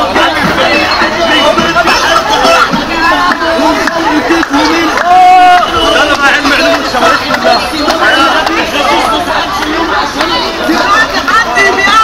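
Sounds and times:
young men chattering: 0.0 - 12.0.

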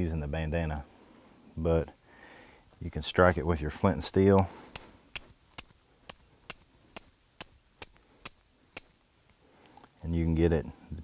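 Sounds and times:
steel striker hitting flint: 4.7 - 9.0.

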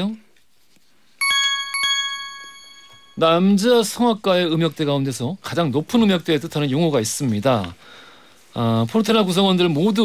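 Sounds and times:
bright bell chime: 1.2 - 3.6.

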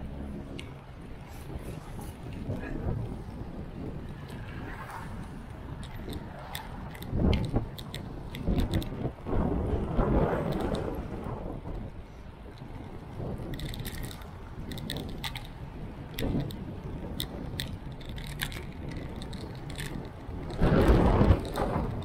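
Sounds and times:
road and traffic rumble: 0.0 - 22.0
wind rushing over microphone: 0.0 - 22.0.

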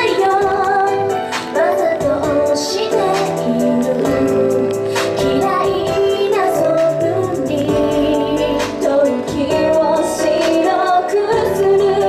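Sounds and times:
pop backing music: 0.0 - 12.0
women singing into microphones: 0.0 - 12.0.

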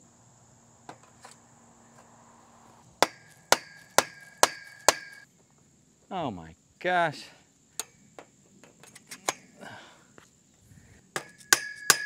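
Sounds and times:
mallet striking metal tubing: 3.0 - 5.2, 11.2 - 12.0.

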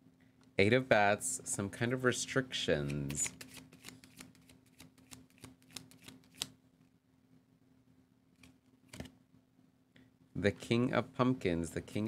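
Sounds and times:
cards shuffling clicks: 2.8 - 6.6, 8.4 - 9.2.

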